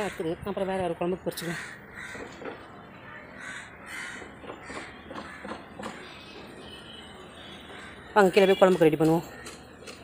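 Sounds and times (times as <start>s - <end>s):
crows cawing: 1.4s - 6.3s, 7.7s - 8.2s.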